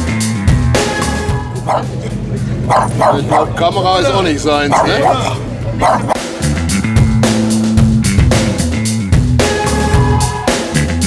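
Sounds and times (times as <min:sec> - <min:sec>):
background music: 0:00.0 - 0:11.0
small dog barking: 0:01.7 - 0:01.9, 0:02.7 - 0:03.5, 0:04.7 - 0:06.2.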